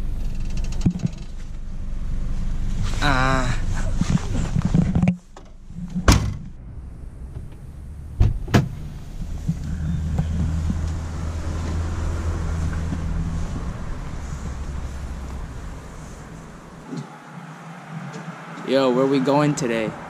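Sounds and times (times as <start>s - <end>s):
car engine humming: 0.0s - 20.0s
car doors slamming: 5.4s - 6.5s, 7.2s - 10.3s.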